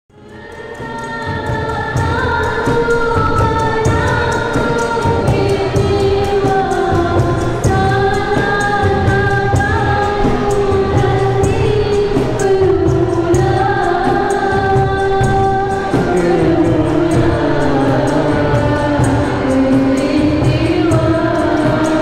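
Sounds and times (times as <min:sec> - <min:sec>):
girl singing into a microphone: 0:00.1 - 0:22.0
harmonium: 0:00.1 - 0:22.0
violin: 0:00.1 - 0:22.0
hand drums: 0:00.2 - 0:22.0.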